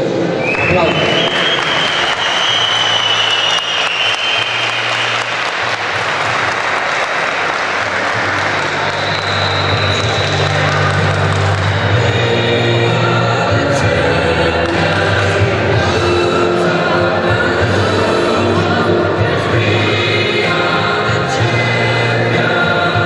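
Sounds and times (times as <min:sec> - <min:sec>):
audience applauding: 0:00.4 - 0:12.2
background music with bass line: 0:08.1 - 0:23.0.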